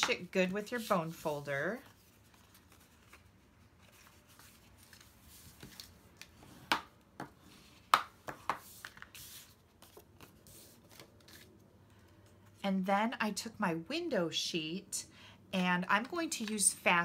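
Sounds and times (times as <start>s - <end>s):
paper rustling and rubbing: 0.6s - 6.0s, 8.5s - 11.6s.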